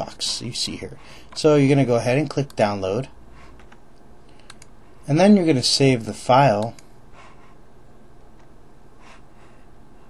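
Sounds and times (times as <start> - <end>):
low room hiss: 0.0 - 10.0
faint computer clicks: 3.6 - 4.7.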